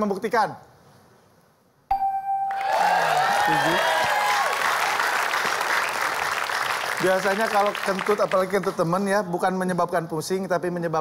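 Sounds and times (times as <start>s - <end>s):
electronic ding: 1.9s - 2.7s
audience applause: 2.5s - 8.9s.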